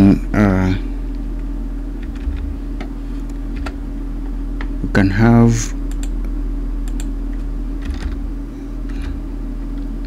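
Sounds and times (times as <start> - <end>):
low electrical hum: 0.0 - 10.0
computer keyboard keystrokes: 5.9 - 6.2, 6.8 - 8.2.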